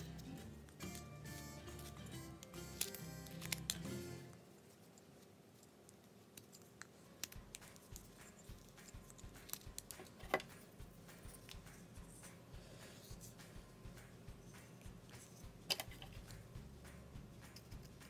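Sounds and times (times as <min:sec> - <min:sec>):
background music: 0:00.0 - 0:04.4, 0:07.1 - 0:18.0
knife carving wood clicks: 0:06.4 - 0:08.0.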